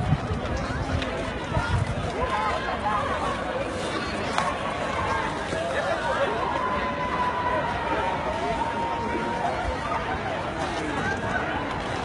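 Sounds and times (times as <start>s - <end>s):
low rumbling on microphone: 0.0s - 12.0s.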